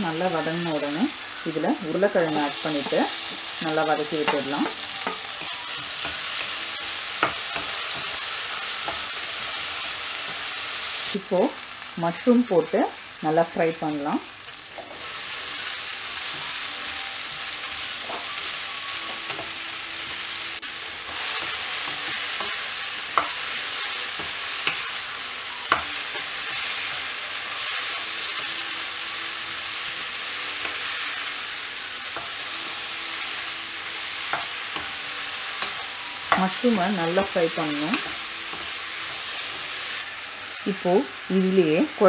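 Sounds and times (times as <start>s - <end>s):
mushrooms sizzling in oil: 0.0s - 42.0s.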